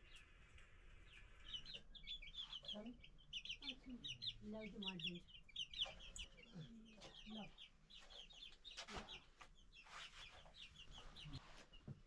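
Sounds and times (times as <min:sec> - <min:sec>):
chicks cheeping: 0:00.0 - 0:12.0
hen clucking: 0:01.3 - 0:11.8.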